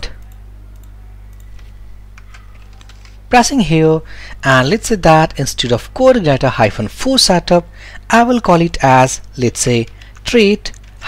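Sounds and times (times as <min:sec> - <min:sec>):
low electrical hum: 0:00.0 - 0:11.0
keyboard clicks: 0:00.2 - 0:03.2.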